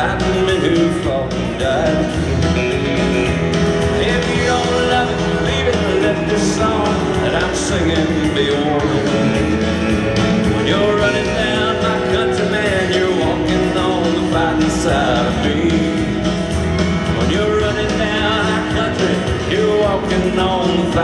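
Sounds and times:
live country band playing: 0.0 - 21.0.

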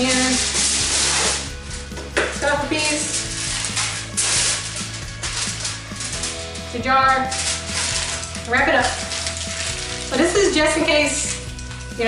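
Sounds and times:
aluminum foil crinkling: 0.0 - 12.0
background music: 0.0 - 12.0.

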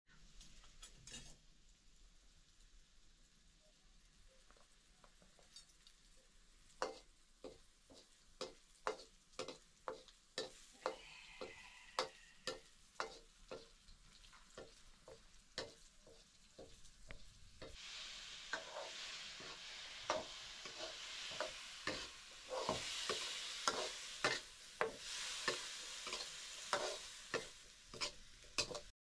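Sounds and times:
food sizzling in oil: 0.5 - 28.9
metal ladle scraping wok: 17.6 - 28.9.

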